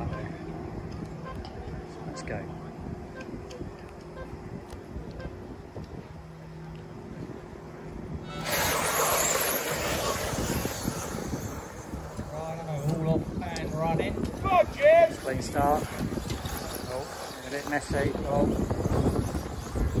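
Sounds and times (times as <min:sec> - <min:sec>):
rc car motors whining: 0:08.2 - 0:20.0.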